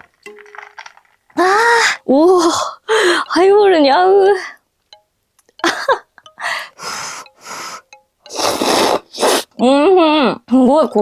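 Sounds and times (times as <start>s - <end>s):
person slurping noodles: 8.3s - 9.6s.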